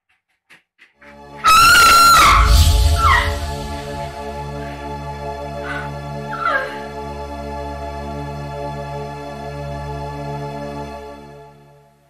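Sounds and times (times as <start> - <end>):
film score with low drones: 1.0 - 11.1
woman screaming in terror: 1.4 - 3.8, 5.7 - 6.9
short falling cry: 1.4 - 4.0
deep boom: 2.2 - 4.4.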